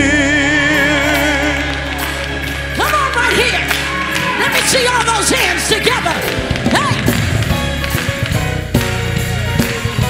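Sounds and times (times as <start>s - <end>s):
gospel choir singing: 0.0s - 8.1s
hand-clapping: 1.6s - 10.0s.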